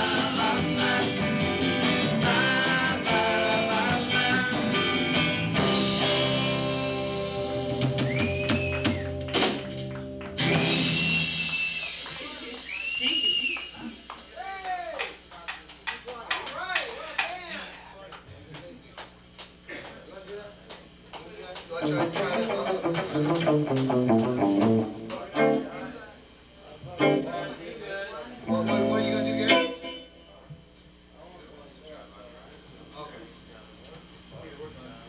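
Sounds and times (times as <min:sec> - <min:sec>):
electric guitar playing: 0:00.0 - 0:11.2, 0:21.8 - 0:26.1, 0:27.0 - 0:27.6, 0:28.4 - 0:30.3
people talking: 0:11.8 - 0:19.1, 0:19.7 - 0:30.6, 0:31.2 - 0:35.0.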